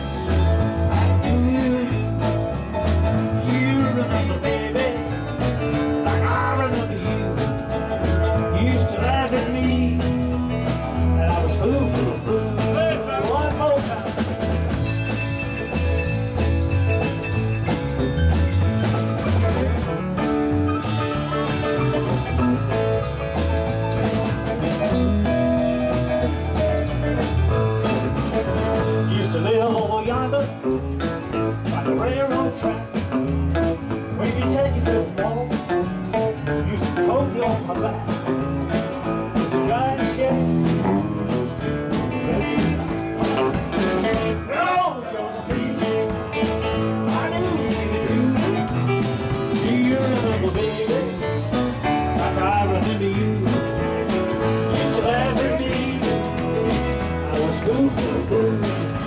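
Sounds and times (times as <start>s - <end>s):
live rock and roll band: 0.0s - 59.0s.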